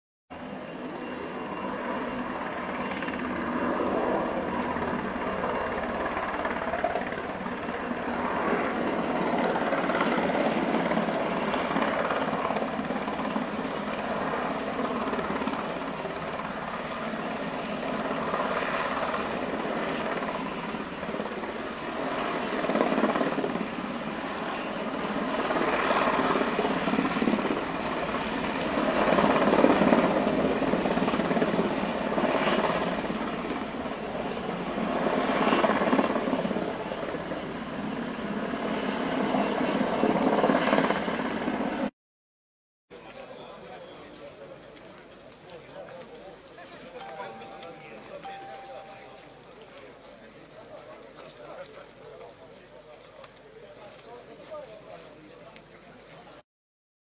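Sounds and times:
helicopter flying overhead: 0:00.3 - 0:41.9, 0:42.9 - 0:56.4
voices: 0:42.9 - 0:56.4.

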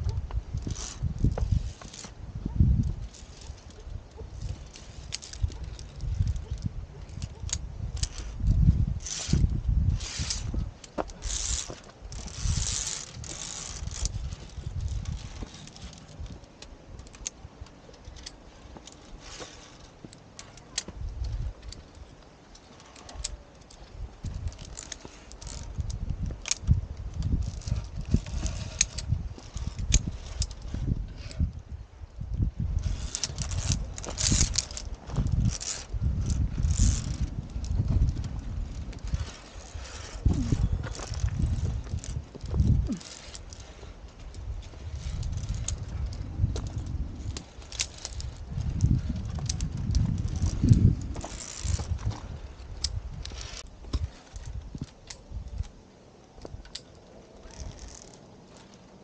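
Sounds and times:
wind on microphone: 0:00.0 - 0:19.8, 0:20.5 - 0:22.2, 0:22.8 - 0:55.8
metallic carabiner clicks: 0:00.0 - 0:31.5, 0:32.8 - 0:58.8
microphone handling noise: 0:32.4 - 0:43.5, 0:44.5 - 0:54.8.

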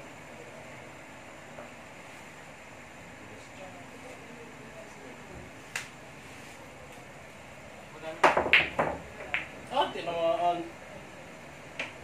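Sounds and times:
billiard balls clicking: 0:08.2 - 0:09.6.

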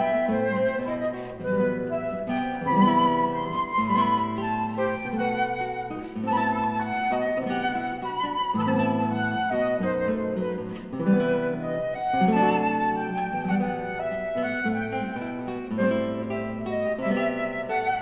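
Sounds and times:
flute melody: 0:00.0 - 0:18.0
guitar accompaniment: 0:00.0 - 0:18.0.

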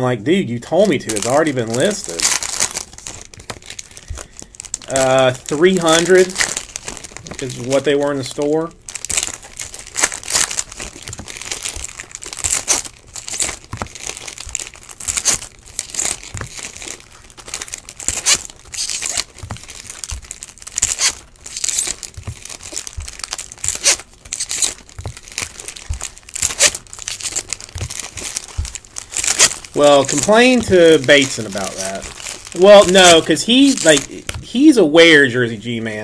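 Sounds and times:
foil wrappers tearing and crinkling: 0:00.4 - 0:36.0.

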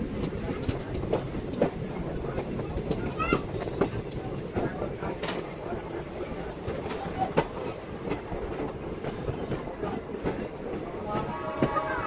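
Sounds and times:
train coach rolling rumble: 0:00.0 - 0:12.0.

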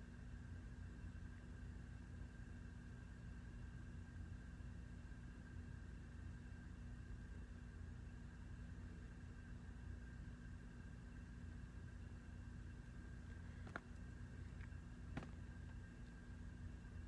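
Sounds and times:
faint high-pitched whine: 0:00.0 - 0:17.0
steady low hum: 0:00.0 - 0:17.0.

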